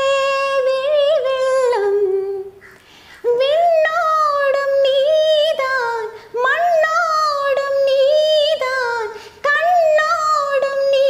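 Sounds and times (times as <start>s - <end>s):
woman singing wordless melody: 0.0s - 11.0s.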